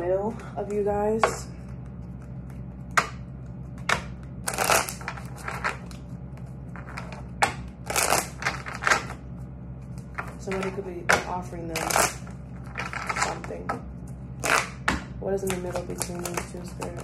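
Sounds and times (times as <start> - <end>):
low steady hum: 0.0 - 17.0
cards being shuffled: 1.2 - 10.8, 11.7 - 17.0.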